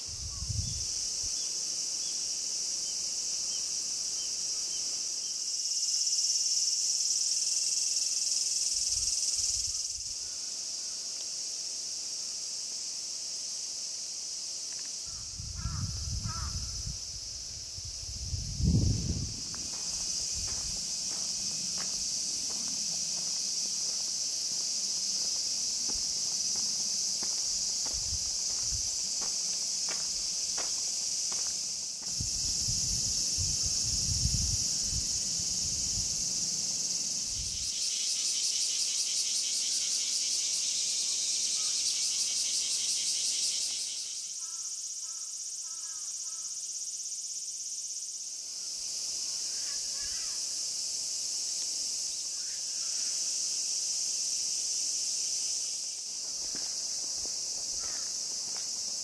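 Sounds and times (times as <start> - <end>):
cicadas droning: 0.0 - 59.0.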